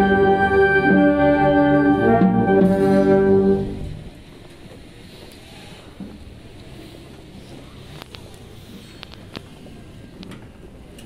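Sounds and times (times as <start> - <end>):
brass band playing: 0.0 - 4.2.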